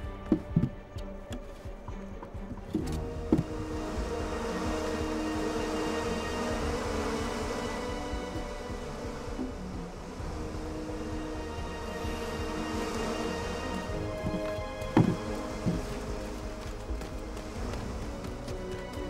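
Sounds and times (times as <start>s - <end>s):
bees buzzing: 1.6s - 19.0s.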